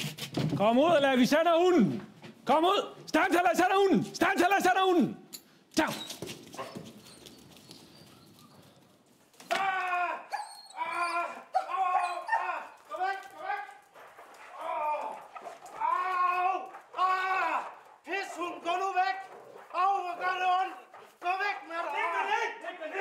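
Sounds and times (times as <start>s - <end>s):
man yelling: 9.5s - 13.8s, 14.6s - 19.2s, 19.8s - 23.0s.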